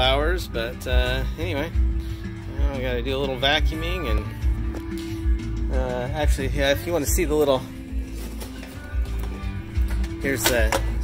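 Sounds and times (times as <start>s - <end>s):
bass-heavy music through car stereo: 0.0s - 11.0s.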